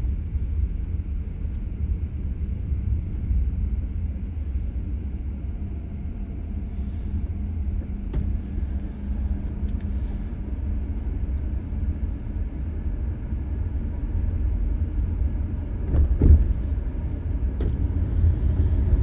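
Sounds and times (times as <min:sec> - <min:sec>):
car road and engine rumble: 0:00.0 - 0:19.0
faint hum: 0:00.0 - 0:19.0.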